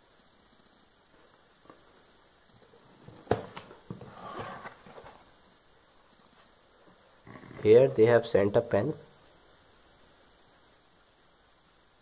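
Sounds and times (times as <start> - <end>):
cardboard and paper rustling: 3.0 - 5.3.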